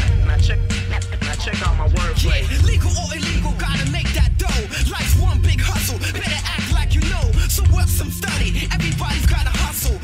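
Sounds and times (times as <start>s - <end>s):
heavy bass and drum hits: 0.0s - 10.0s
rapping over a beat: 0.0s - 10.0s.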